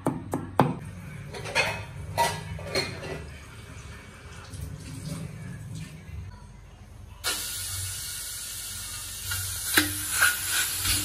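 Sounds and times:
meat sizzling in a wok: 7.2s - 11.0s.

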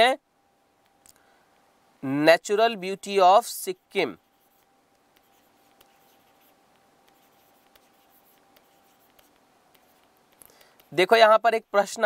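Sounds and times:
faint steady tone: 0.0s - 12.0s
stylus tapping and scratching tablet: 3.6s - 12.0s.

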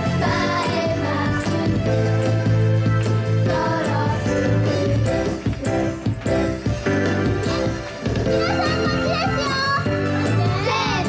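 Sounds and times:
girls singing into microphones: 0.0s - 2.2s, 3.4s - 5.6s
loud pop backing track: 0.0s - 11.0s.

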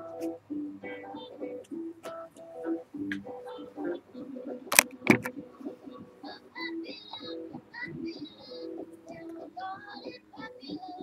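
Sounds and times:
child singing: 0.8s - 1.6s, 5.9s - 11.0s.

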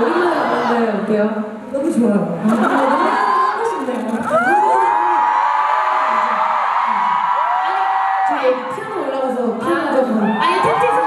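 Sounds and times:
audience screaming and cheering: 2.5s - 9.2s, 10.0s - 11.0s.

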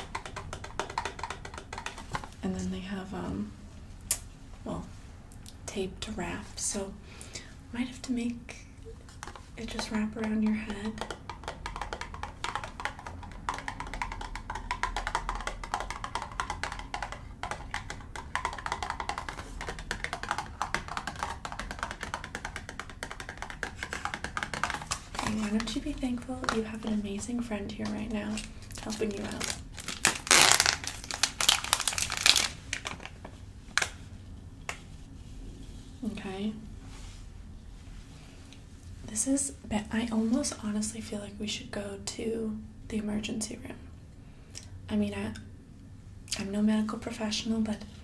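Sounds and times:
fingernails tapping on cardboard box: 10.9s - 25.2s.

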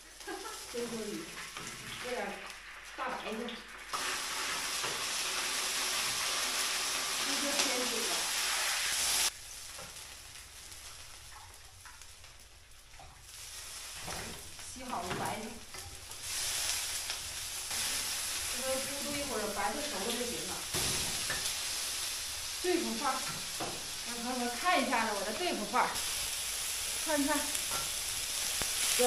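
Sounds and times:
food sizzling in a wok: 0.0s - 29.0s.

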